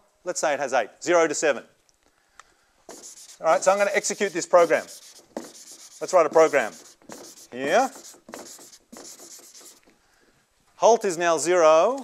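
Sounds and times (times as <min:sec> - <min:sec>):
chalk writing on blackboard: 0:02.9 - 0:09.9.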